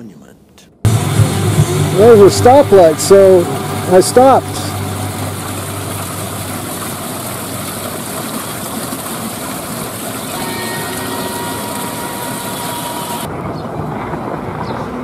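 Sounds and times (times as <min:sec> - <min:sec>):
water splashing into fountain basin: 0:00.9 - 0:13.3.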